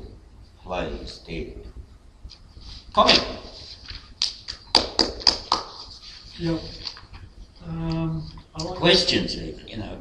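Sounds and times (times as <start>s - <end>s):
hand claps: 4.2s - 5.9s.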